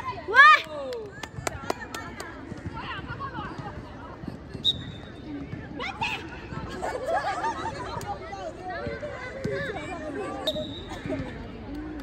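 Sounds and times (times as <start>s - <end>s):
girls calling and chattering: 0.0s - 12.0s.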